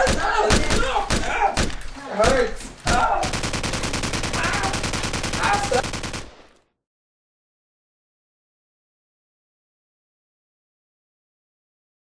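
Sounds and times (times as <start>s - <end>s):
single gunshots: 0.0s - 6.4s
automatic gunfire burst: 3.2s - 6.4s.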